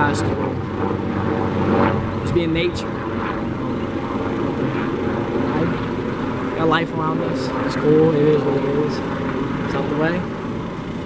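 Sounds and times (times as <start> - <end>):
helicopter flying overhead: 0.0 - 11.0.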